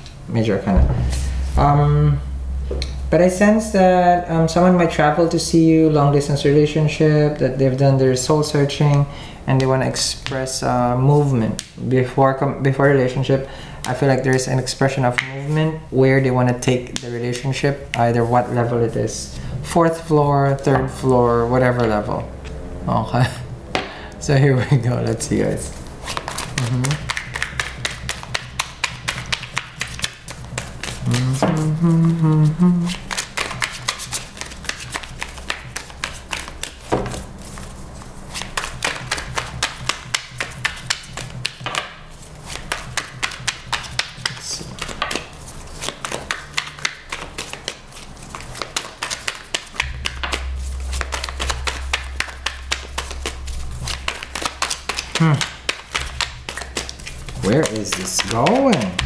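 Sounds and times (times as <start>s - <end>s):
cards being shuffled: 25.4s - 59.0s.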